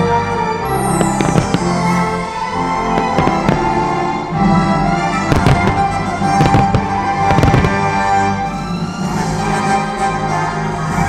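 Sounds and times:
fireworks bursting: 0:00.7 - 0:08.4
loud show music: 0:00.8 - 0:10.9.

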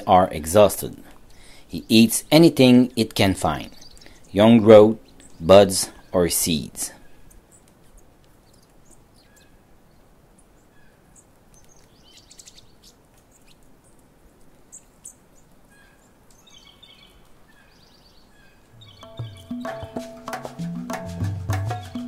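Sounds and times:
small bird chirps and trills: 0:01.2 - 0:20.0.

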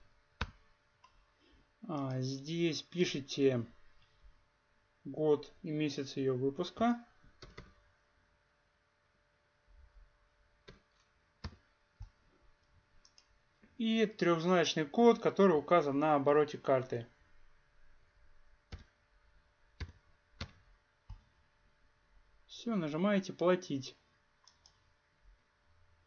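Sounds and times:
man talking: 0:01.8 - 0:03.8, 0:05.1 - 0:07.1, 0:13.8 - 0:17.1, 0:22.5 - 0:24.0
computer mouse clicks: 0:07.4 - 0:07.8, 0:10.6 - 0:13.4, 0:18.7 - 0:19.0, 0:19.8 - 0:21.3, 0:24.4 - 0:24.9
keyboard or mouse clicking: 0:07.4 - 0:07.8, 0:13.0 - 0:13.3, 0:18.7 - 0:18.9, 0:19.8 - 0:21.2, 0:24.4 - 0:24.8.

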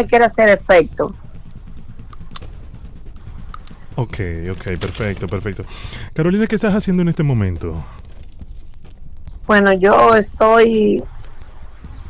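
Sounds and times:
low steady background rumble: 0:00.0 - 0:12.0
faint clicks: 0:07.1 - 0:09.5.

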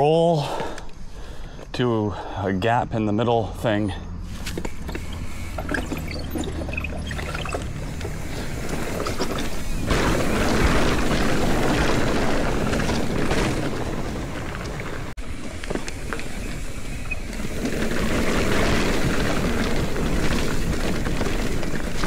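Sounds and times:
bike tyres rolling over rock: 0:04.3 - 0:22.0.

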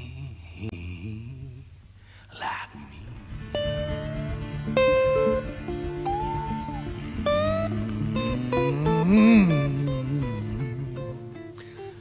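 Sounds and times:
low guitar accompaniment: 0:03.1 - 0:12.0
plucked guitar notes sliding upward: 0:03.2 - 0:11.6.

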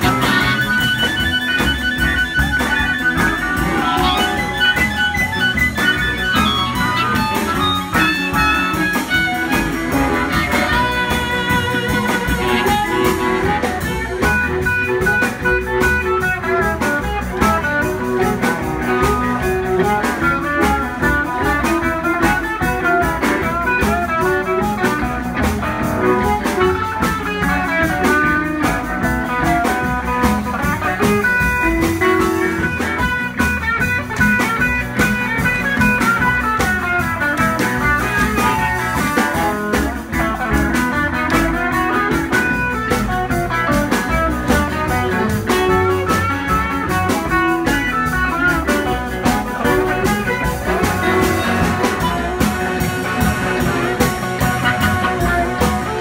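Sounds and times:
drum kit: 0:00.0 - 0:56.0
electric guitars: 0:00.0 - 0:56.0
upright bass: 0:00.0 - 0:56.0.

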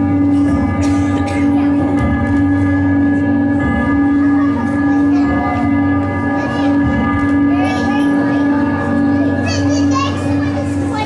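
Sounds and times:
children chattering and calling out: 0:00.0 - 0:11.0
steady hum: 0:00.0 - 0:11.0.

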